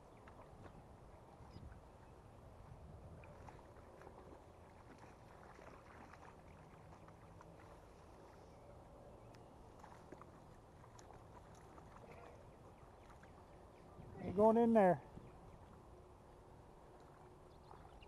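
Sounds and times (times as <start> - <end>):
faint outdoor background noise: 0.0 - 18.0
soft ticks and crackles: 3.1 - 8.5, 9.2 - 13.9, 16.9 - 18.0.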